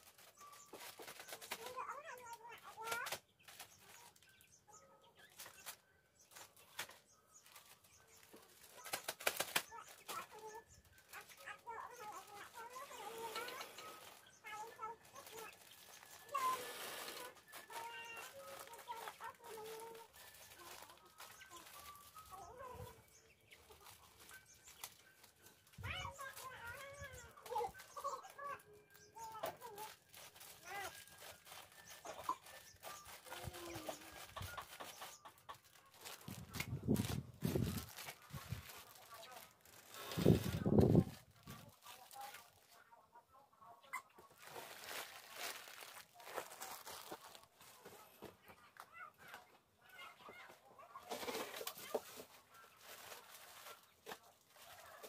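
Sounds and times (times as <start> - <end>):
birds calling: 0.0 - 41.0
plastic bags crinkling: 0.0 - 42.9, 44.1 - 55.0.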